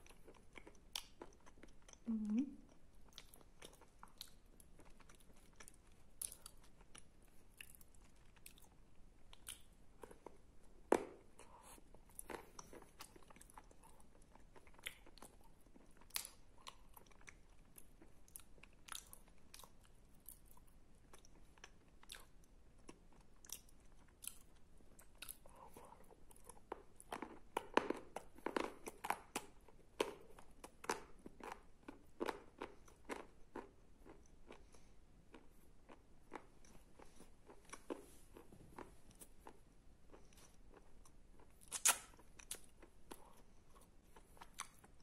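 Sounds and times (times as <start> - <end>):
sticky chewing with clicks: 0.0 - 38.0, 38.8 - 45.0.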